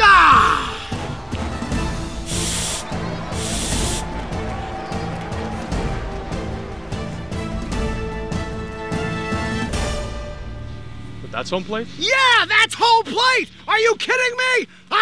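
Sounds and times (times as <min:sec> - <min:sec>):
man shouting: 0:00.0 - 0:01.0
background music: 0:00.0 - 0:13.1
steam hissing from nozzle: 0:02.2 - 0:04.0.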